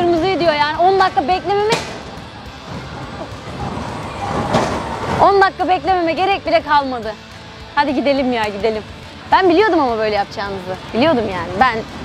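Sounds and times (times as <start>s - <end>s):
roller coaster rushing rumble: 2.5s - 5.8s.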